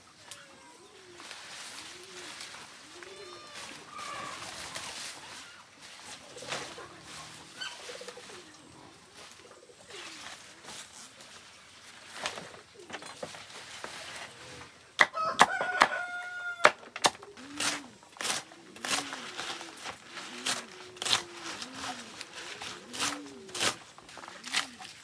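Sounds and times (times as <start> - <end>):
rooster crowing: 15.1 - 16.8.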